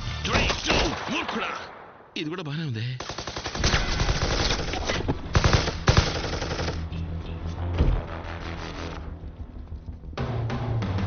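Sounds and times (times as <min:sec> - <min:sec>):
automatic gunfire: 0:03.0 - 0:06.8.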